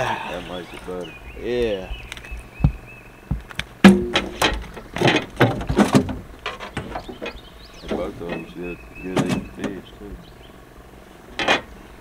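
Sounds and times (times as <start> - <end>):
knocks and thumps in a boat: 2.0 - 10.3, 11.3 - 11.8
cooler lid opening: 3.9 - 8.5.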